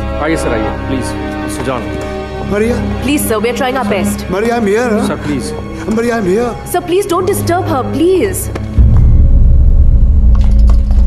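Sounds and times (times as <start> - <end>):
deep low rumble: 8.8 - 11.0.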